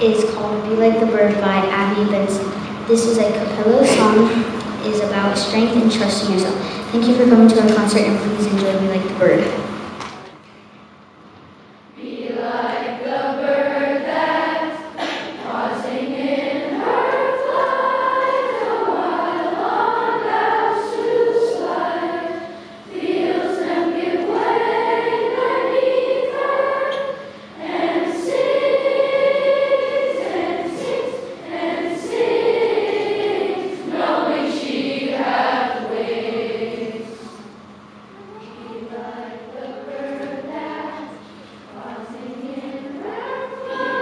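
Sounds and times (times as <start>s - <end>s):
children's choir singing a cappella: 0.0s - 9.9s, 11.8s - 44.0s.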